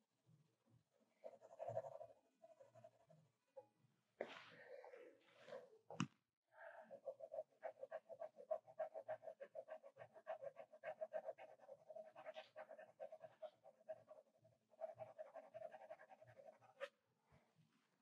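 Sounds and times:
pencil hatching on paper: 6.9s - 16.9s.

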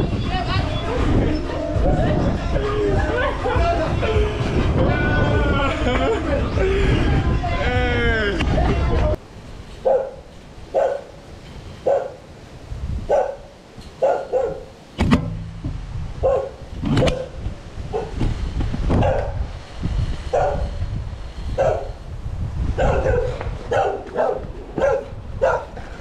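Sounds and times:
dog barking: 9.8s - 11.2s, 11.8s - 12.2s, 13.1s - 14.8s, 16.2s - 18.2s, 19.0s - 19.4s, 20.3s - 20.7s, 21.6s - 22.0s, 22.8s - 25.8s
sharp thump: 15.0s - 16.0s.

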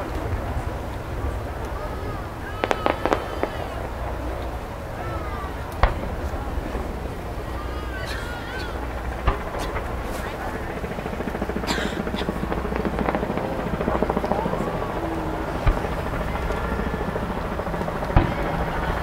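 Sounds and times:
crowd chatter: 0.0s - 19.0s
fireworks booming: 0.0s - 19.0s.

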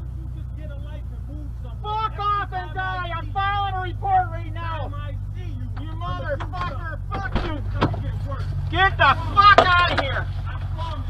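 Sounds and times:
car engine rumbling: 0.0s - 11.0s.

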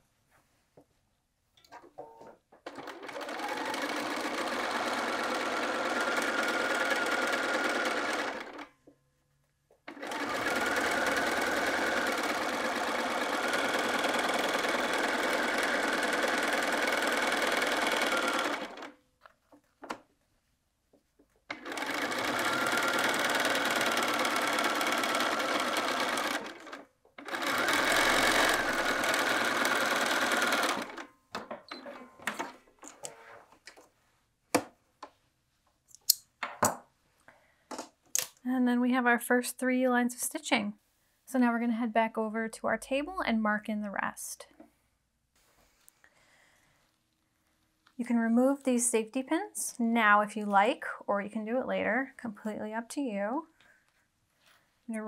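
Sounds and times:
sewing machine stitching: 2.0s - 8.7s, 9.8s - 20.0s, 21.5s - 33.4s.

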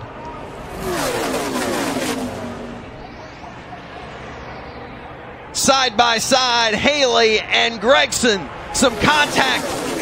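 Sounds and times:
race truck engines passing: 0.0s - 10.0s.

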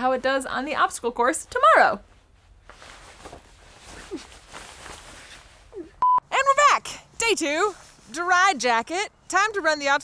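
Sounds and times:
faint rustles: 2.0s - 6.0s, 7.4s - 8.4s.

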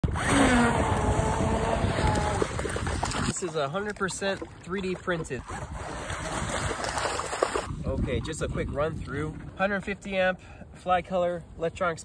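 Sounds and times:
electric motor whine: 0.1s - 2.4s.

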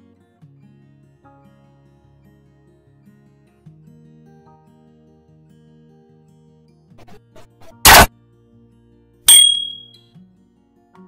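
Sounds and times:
metallic notification ding: 9.3s - 10.0s.

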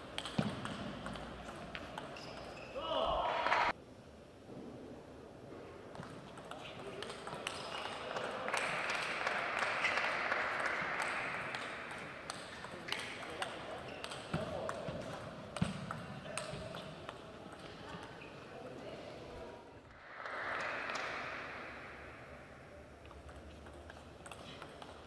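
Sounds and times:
table tennis ball ticking: 0.1s - 2.6s, 23.0s - 25.0s.

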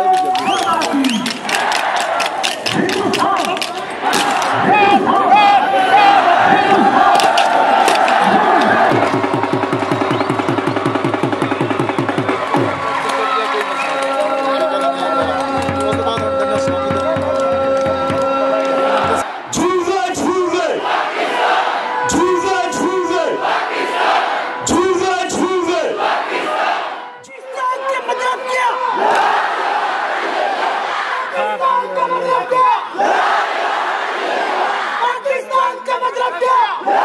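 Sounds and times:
crowd cheering and chanting: 0.0s - 37.0s
rapid drumbeats dropping in pitch: 6.2s - 13.2s, 15.2s - 20.6s.

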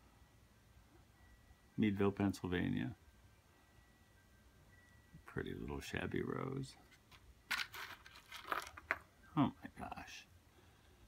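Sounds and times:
rustling lace and paper scraps: 6.8s - 9.0s.

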